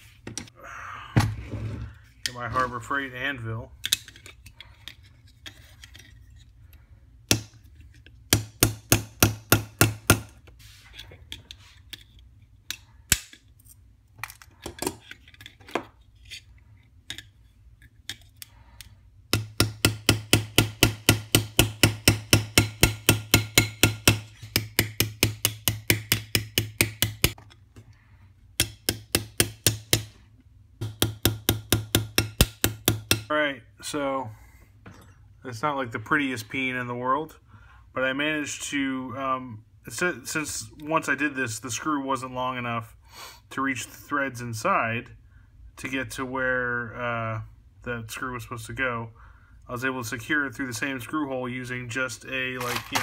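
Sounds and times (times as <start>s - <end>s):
small hammer tapping metal: 19.3s - 27.5s, 28.6s - 30.1s, 30.8s - 33.3s.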